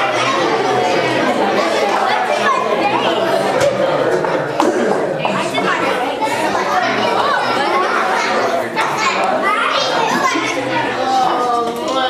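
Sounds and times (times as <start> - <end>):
children shouting and chattering: 0.0 - 12.0.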